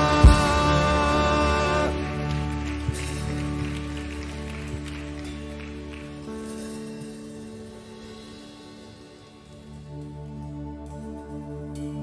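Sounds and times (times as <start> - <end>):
steady bass: 0.0 - 5.8
band playing held chords: 0.0 - 10.1.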